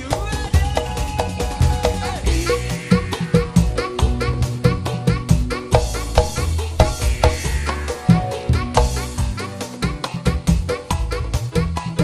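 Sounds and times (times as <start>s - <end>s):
bass: 0.0s - 12.0s
driving drum beat: 0.0s - 12.0s
sliding melody line: 2.3s - 9.7s.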